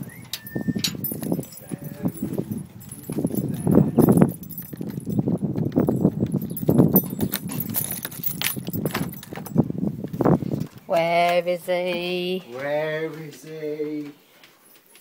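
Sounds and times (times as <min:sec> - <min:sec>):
keys jingling: 0:00.1 - 0:09.9, 0:14.5 - 0:15.0.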